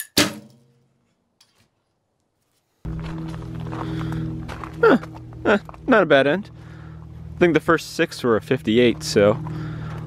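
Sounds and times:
background music: 2.9s - 10.0s.

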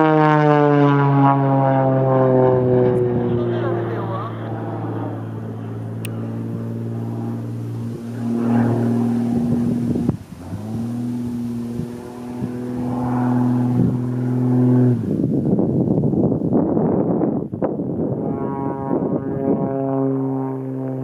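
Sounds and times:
propeller plane engine droning: 0.0s - 21.0s.

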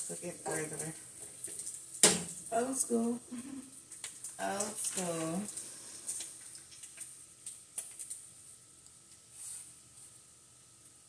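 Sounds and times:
bacon sizzling in a skillet: 0.0s - 11.0s
fat crackling and popping: 0.0s - 11.0s.

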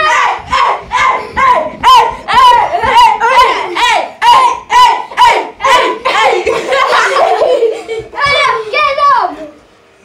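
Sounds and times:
boys shouting a rhythmic chant: 0.0s - 7.4s.

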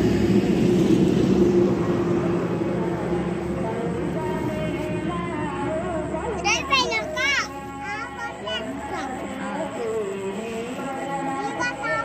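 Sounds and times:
child calling high-pitched: 6.4s - 9.2s, 11.3s - 12.0s.

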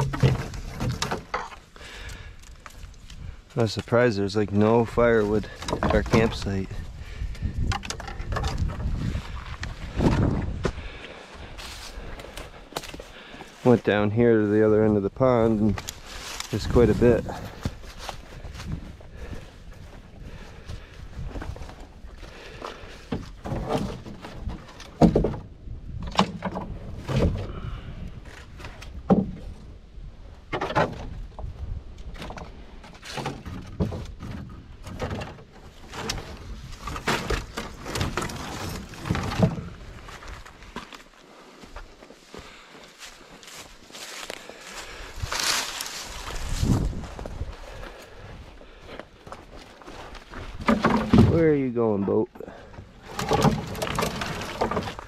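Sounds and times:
firewood clattering into canoe: 0.0s - 2.8s, 4.6s - 11.0s, 15.2s - 29.7s, 30.4s - 41.0s, 43.5s - 55.0s
twigs rustling: 0.0s - 25.1s, 31.9s - 55.0s.

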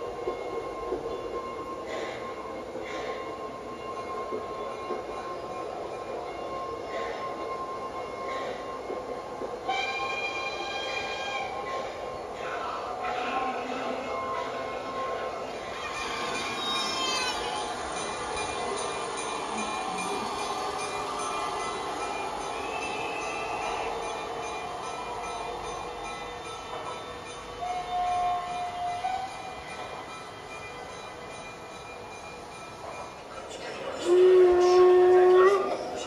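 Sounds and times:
model trains running: 0.0s - 36.0s
locomotive whistle tone: 9.6s - 11.7s, 22.5s - 24.4s, 27.6s - 29.6s, 34.0s - 36.0s.

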